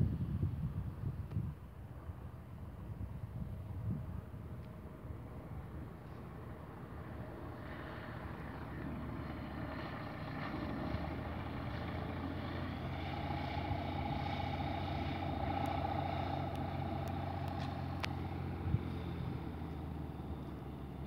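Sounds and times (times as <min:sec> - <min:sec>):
propeller aircraft engine droning: 0:00.0 - 0:21.0.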